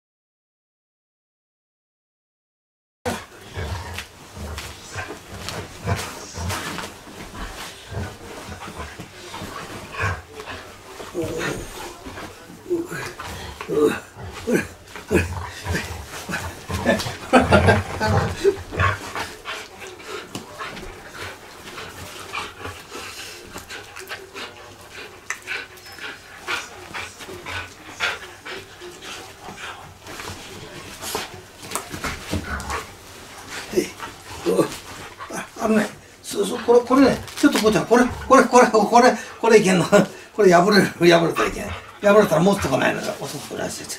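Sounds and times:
dog growling: 0:03.1 - 0:43.6
scuffs and rustles of bedding: 0:03.1 - 0:43.9.

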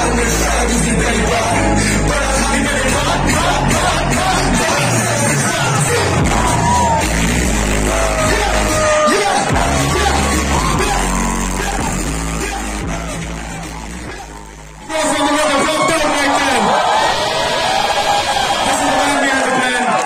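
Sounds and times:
person rapping over a beat: 0:00.0 - 0:06.3, 0:08.2 - 0:13.2
crowd yelling: 0:00.0 - 0:20.0.

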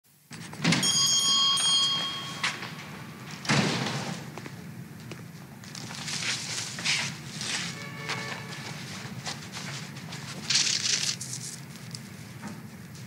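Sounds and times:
door ringing bell-like tone: 0:00.7 - 0:03.4, 0:07.8 - 0:08.6.

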